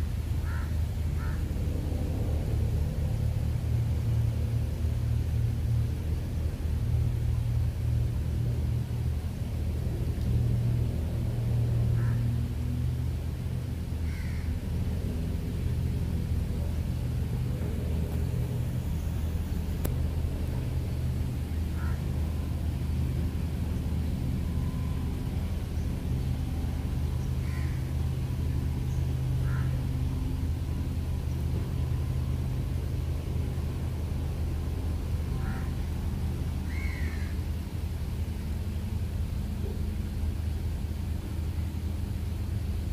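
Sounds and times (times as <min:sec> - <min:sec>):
low rumble: 0:00.0 - 0:42.9
bird calls: 0:27.1 - 0:28.0, 0:28.8 - 0:29.9, 0:36.6 - 0:37.4.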